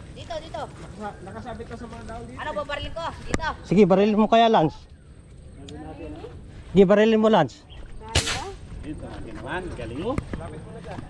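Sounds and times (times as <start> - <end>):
air rifle shot: 8.1 - 8.6.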